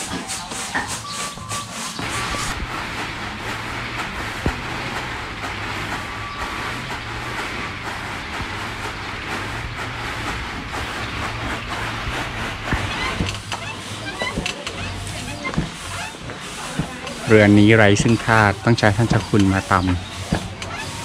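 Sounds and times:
low steady hum: 2.0 - 14.2.

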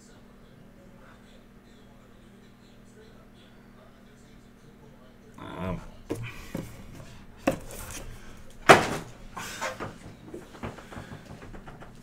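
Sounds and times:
handling knocks and clunks: 6.0 - 12.0.

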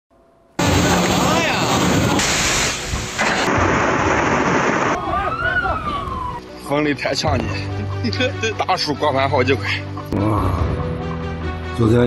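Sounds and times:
torrential rain: 0.6 - 5.0.

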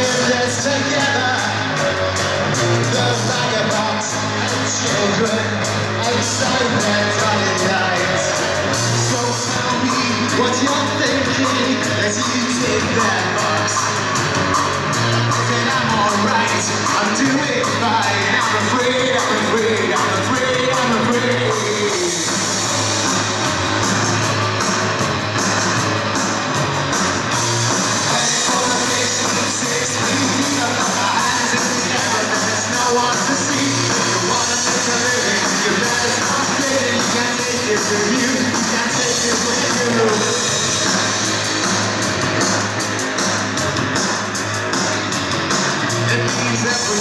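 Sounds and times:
bass guitar: 0.0 - 47.0
electric guitar: 0.0 - 47.0
live rock band playing: 0.0 - 47.0
steady drum beat: 0.0 - 47.0.

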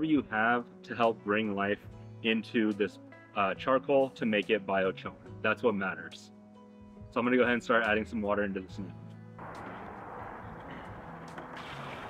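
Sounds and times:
water pouring into plastic drum: 11.0 - 12.0.

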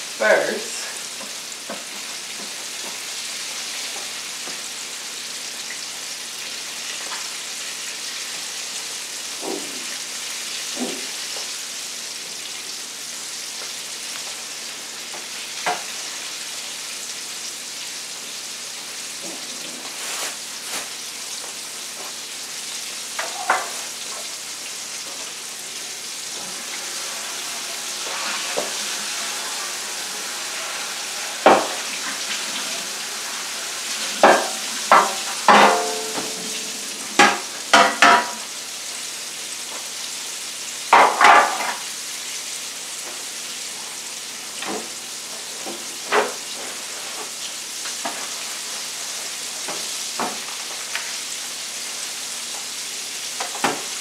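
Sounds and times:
food frying in hot oil: 0.0 - 54.0.

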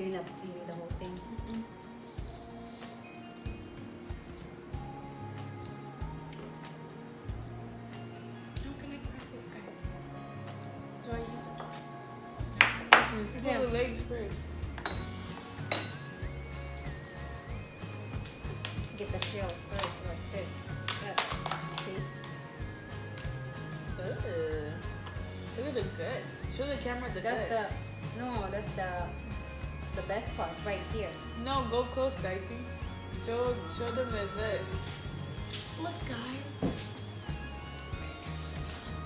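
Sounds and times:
background music with bass line: 1.0 - 39.0.

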